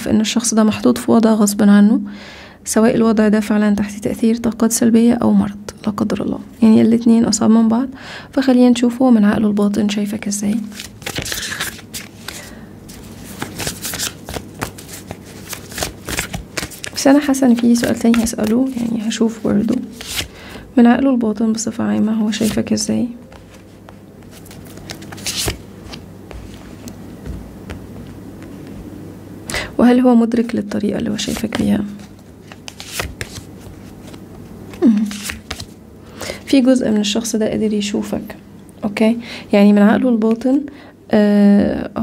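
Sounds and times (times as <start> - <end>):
cards being shuffled: 10.5 - 20.6, 22.0 - 28.8, 31.0 - 35.8.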